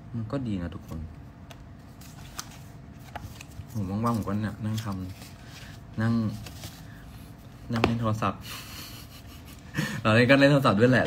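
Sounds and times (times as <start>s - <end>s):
man talking: 10.0s - 11.0s.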